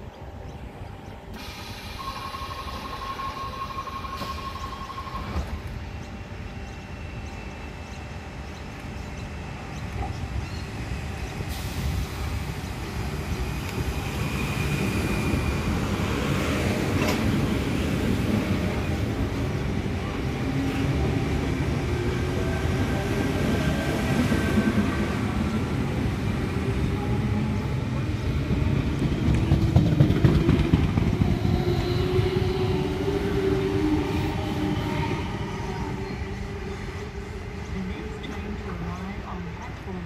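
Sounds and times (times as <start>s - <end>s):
train wheels rumbling on rail: 0.0s - 40.0s.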